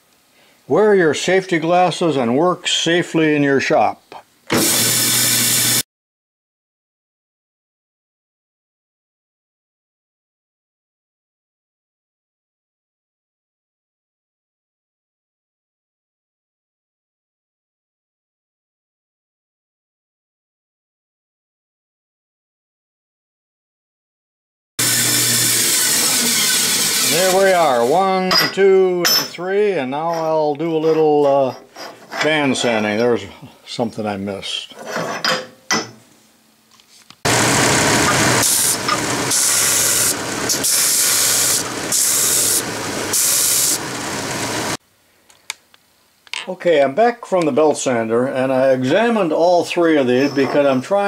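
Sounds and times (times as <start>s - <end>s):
man speaking: 0.7s - 4.3s, 27.1s - 31.6s, 32.2s - 34.8s, 46.4s - 51.0s
bandsaw running: 4.5s - 5.8s, 24.8s - 28.2s, 37.3s - 44.8s.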